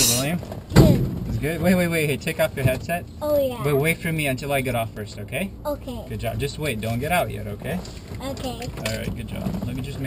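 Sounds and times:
sharp thump: 0.0 - 1.4.

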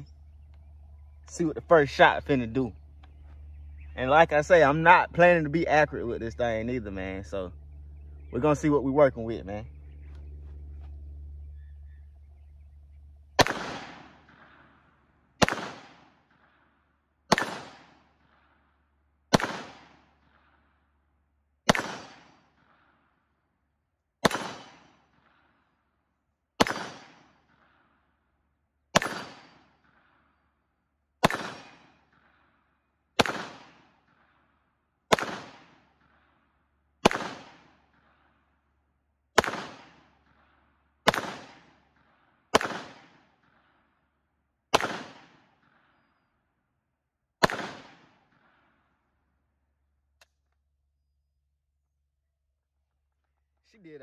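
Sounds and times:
pistol shots: 13.4 - 16.5, 17.3 - 18.4, 19.3 - 20.4, 21.6 - 22.8, 24.2 - 25.3, 26.6 - 27.8, 28.9 - 30.1, 31.2 - 32.3, 33.2 - 34.2, 35.1 - 36.2, 37.0 - 38.1, 39.4 - 40.4, 41.0 - 43.6, 44.7 - 46.1, 47.4 - 48.6.

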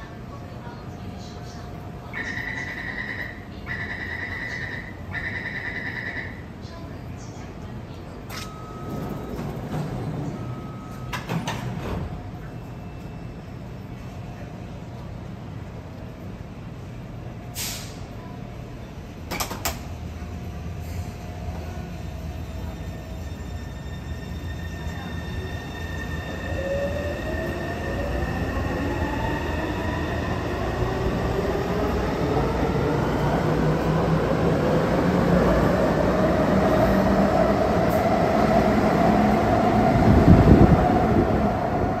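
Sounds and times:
wheel and rail rumble: 6.5 - 42.0.

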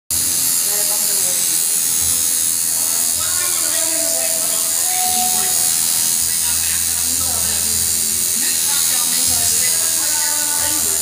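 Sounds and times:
tattoo machine buzzing: 0.1 - 11.0.

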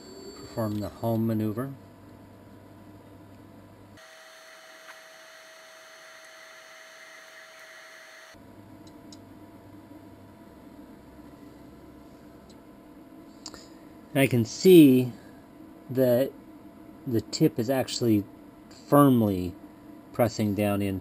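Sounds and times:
stepper motor whine: 0.0 - 1.3, 4.0 - 8.4
low hum: 0.0 - 4.0.

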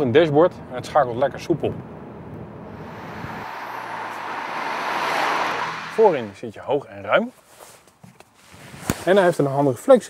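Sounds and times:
car engine low drone: 2.0 - 6.4
tyre and wind noise rushing: 2.7 - 6.4.

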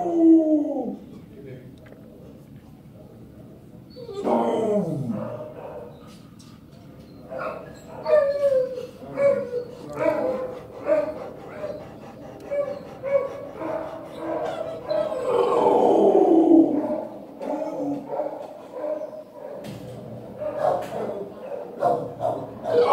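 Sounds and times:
dog whining: 3.9 - 5.3, 7.1 - 18.1, 22.6 - 22.9.

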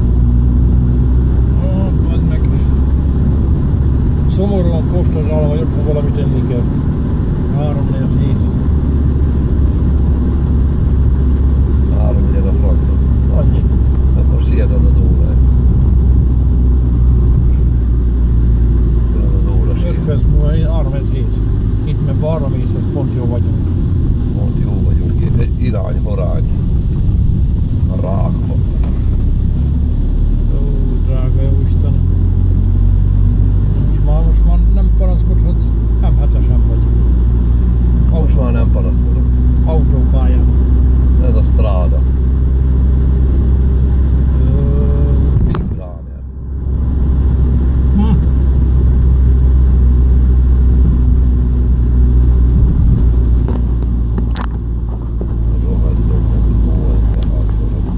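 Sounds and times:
car engine and road noise: 0.0 - 57.9.

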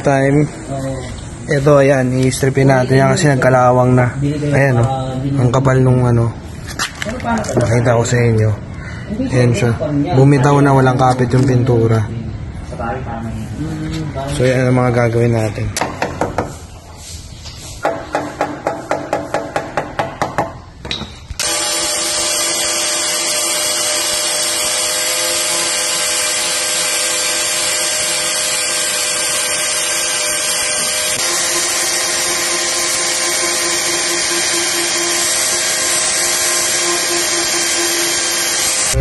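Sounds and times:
hammer knocking on rusted steel: 15.8 - 16.5, 17.8 - 21.0
angle grinder grinding metal: 21.4 - 39.0.

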